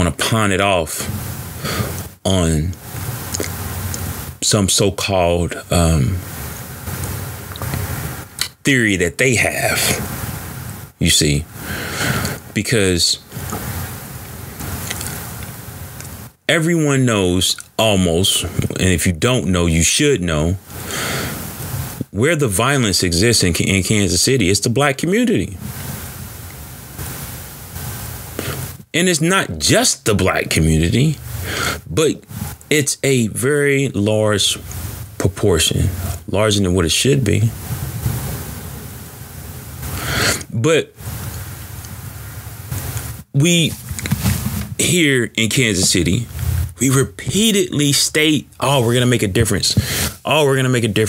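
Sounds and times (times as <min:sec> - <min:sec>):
even hiss: 0:00.0 - 0:51.0
intake of breath: 0:01.6 - 0:02.0, 0:11.5 - 0:12.4, 0:20.7 - 0:21.5, 0:39.9 - 0:40.4, 0:49.8 - 0:50.2.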